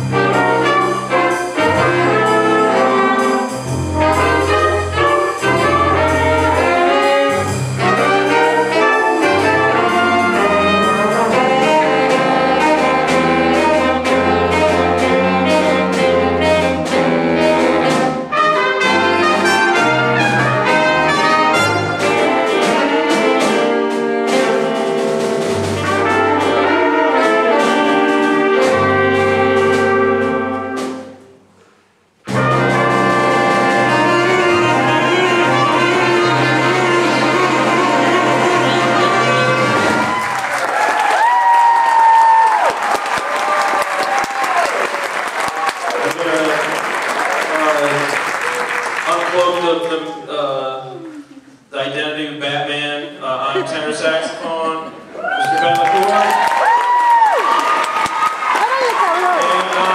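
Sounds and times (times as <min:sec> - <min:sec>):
jazz big band playing: 0:00.0 - 0:49.6
audience applause: 0:39.8 - 0:50.2, 0:55.2 - 0:59.9.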